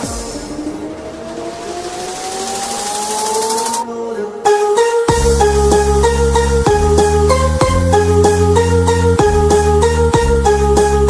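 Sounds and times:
sustained synth notes: 0.0s - 11.0s
synth riser gliding upward: 0.0s - 11.0s.

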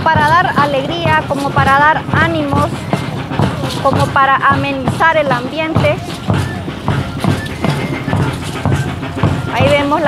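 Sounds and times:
drum beating steadily: 0.0s - 10.0s.

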